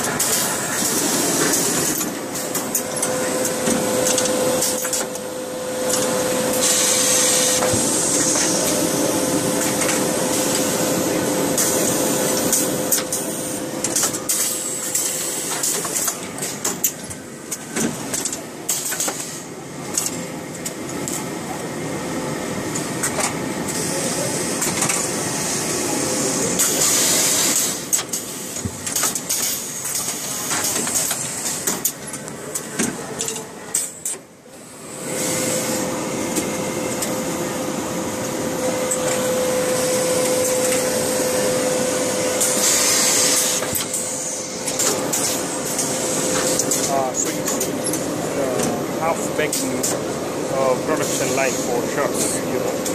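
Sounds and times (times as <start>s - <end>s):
air hissing from machine: 0.0s - 16.2s, 23.6s - 28.7s, 34.6s - 52.9s
steady machine hum: 0.0s - 52.9s
large hall noise: 30.4s - 52.9s.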